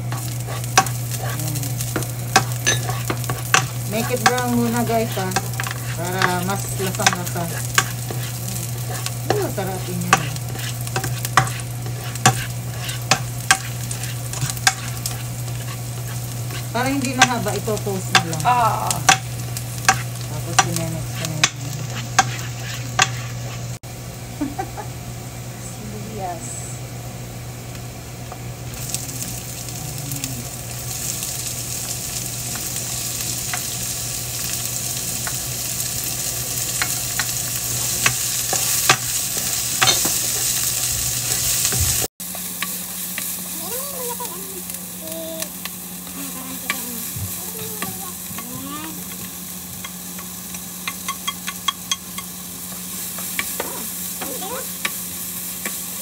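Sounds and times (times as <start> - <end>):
garlic and onion sizzling in oil: 0.0 - 56.0
steady low hum: 0.0 - 56.0
spatula scraping and tapping pan: 0.1 - 18.4, 19.1 - 23.6, 46.7 - 55.0.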